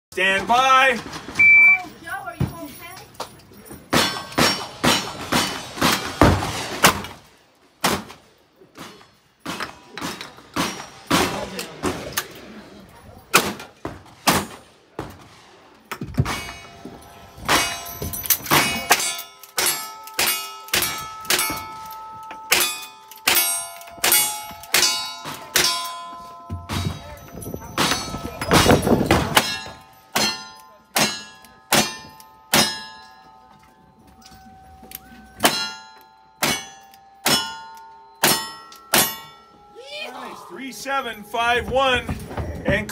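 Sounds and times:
steel targets ringing: 16.2 - 42.2.

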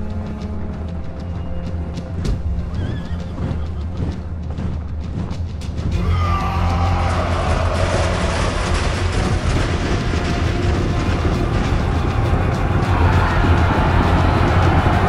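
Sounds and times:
loud film score: 0.0 - 15.0
low rumble of massed noise: 0.0 - 15.0.

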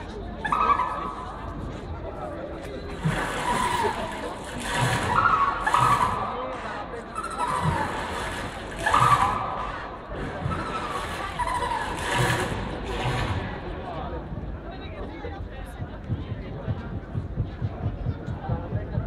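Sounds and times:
crowd noise: 0.0 - 19.0.

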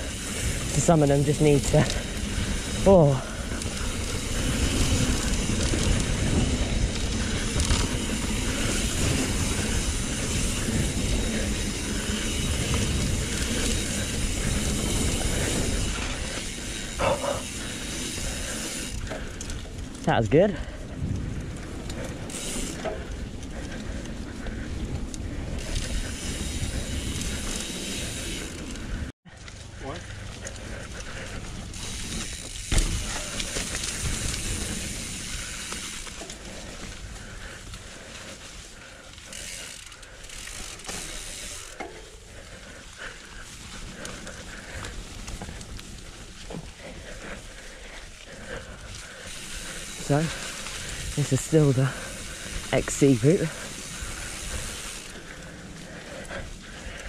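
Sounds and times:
bike rattling: 0.0 - 57.0
tyres rushing over dirt: 48.3 - 57.0.

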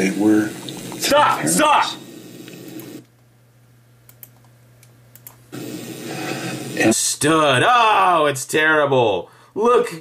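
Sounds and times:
steady low hum: 0.0 - 8.3.

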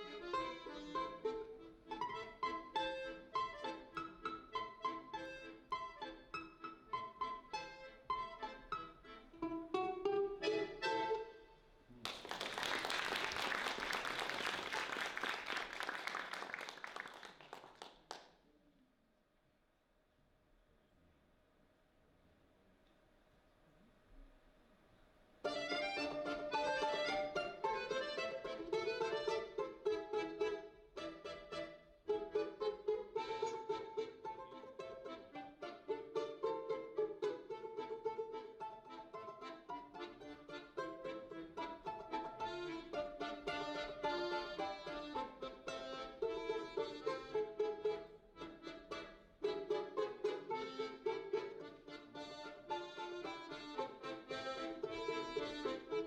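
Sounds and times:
piano accordion: 0.0 - 11.5, 25.4 - 56.0
plucked balalaika: 0.0 - 12.1, 25.4 - 56.0.

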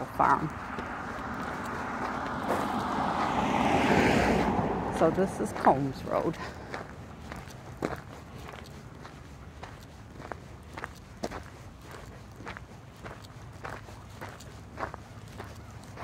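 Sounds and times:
footsteps walking: 0.0 - 3.6, 4.4 - 16.0.

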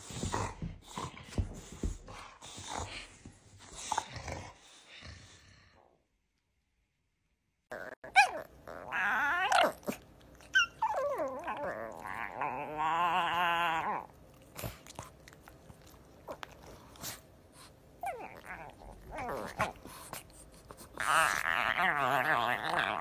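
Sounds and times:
puppy whining and growling: 7.7 - 23.0.

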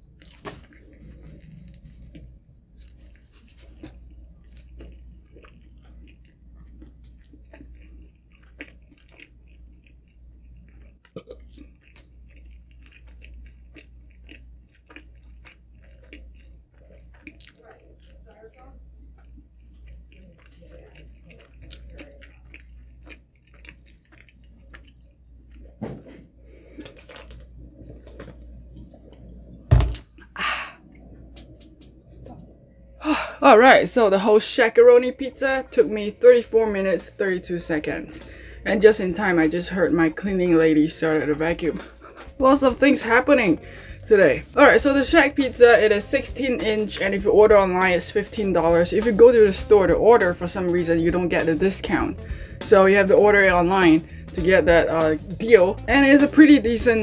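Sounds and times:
person chewing food: 0.0 - 33.8, 37.9 - 38.6, 41.2 - 42.5, 51.9 - 52.7, 54.0 - 54.4
low steady hum: 0.0 - 57.0.

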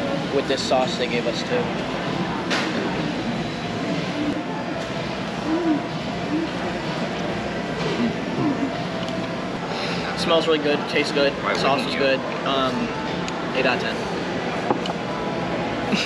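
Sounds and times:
faint indistinct voices: 0.0 - 16.0.

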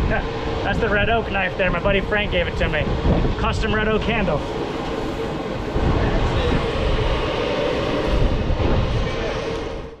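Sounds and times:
steady hum: 0.0 - 10.0
low rumble: 5.5 - 10.0.

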